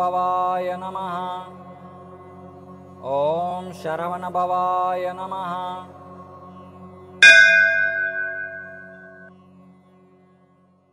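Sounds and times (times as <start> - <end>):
bell ringing: 7.2 - 9.3
low drone: 7.2 - 9.3.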